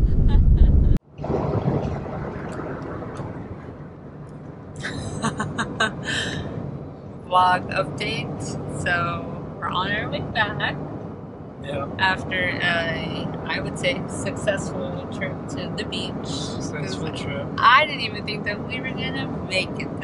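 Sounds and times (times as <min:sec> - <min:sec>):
car cabin road and engine noise: 0:01.8 - 0:20.0
people talking and laughing: 0:04.8 - 0:06.4.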